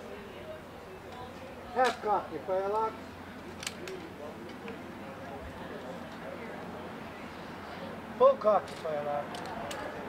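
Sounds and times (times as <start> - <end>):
musket cocks clicking: 3.6 - 4.0.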